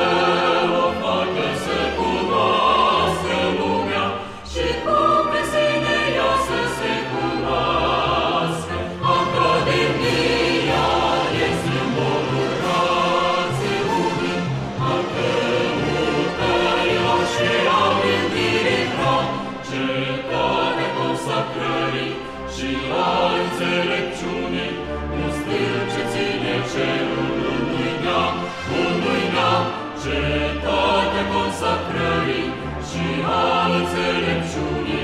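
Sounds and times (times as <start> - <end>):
choir singing: 0.0 - 35.0.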